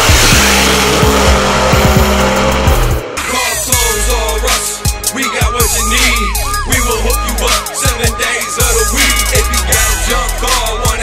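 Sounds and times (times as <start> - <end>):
bass-heavy music with steady beat: 0.0 - 11.0
drag race cars accelerating: 0.0 - 11.0.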